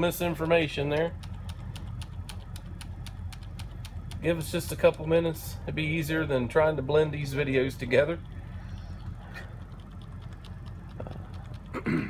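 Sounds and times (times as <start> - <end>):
low steady hum: 0.0 - 12.0
keyboard key clicking: 0.3 - 5.1, 9.0 - 11.8.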